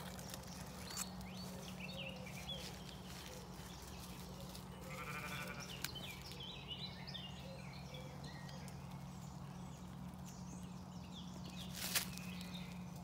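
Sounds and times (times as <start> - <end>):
steady low hum: 0.0 - 13.0
woodland birds chirping: 0.0 - 13.0.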